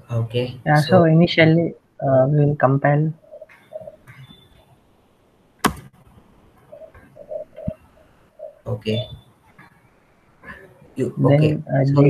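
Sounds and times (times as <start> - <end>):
faint low cooing calls: 6.7 - 9.2.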